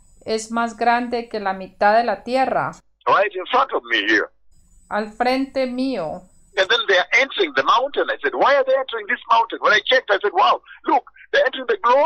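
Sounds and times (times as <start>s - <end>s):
person talking: 0.3s - 4.3s, 4.9s - 12.0s.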